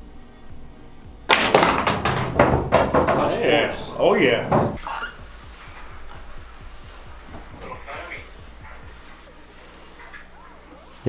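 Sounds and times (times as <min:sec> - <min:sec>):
cue tip striking ball: 0:01.3 - 0:04.8
billiard balls clacking: 0:01.3 - 0:09.0.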